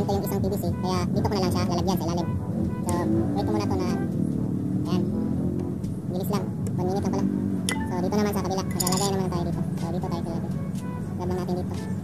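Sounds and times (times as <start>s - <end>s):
person talking: 6.2s - 10.4s
metal lid clinking off tin: 8.7s - 9.1s.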